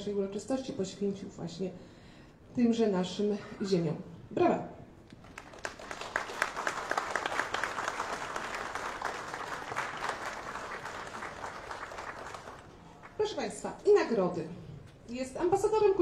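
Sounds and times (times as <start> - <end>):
audience applauding: 5.2 - 13.2.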